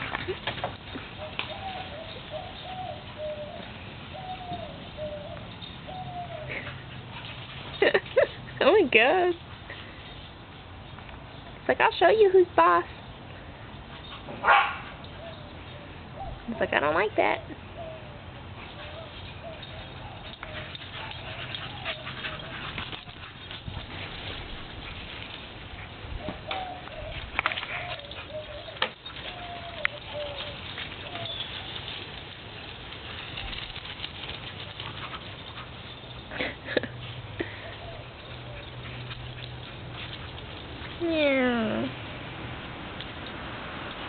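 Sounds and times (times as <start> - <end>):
bird hooting: 1.2 - 6.5, 26.2 - 31.5
dog barking: 14.4 - 15.0.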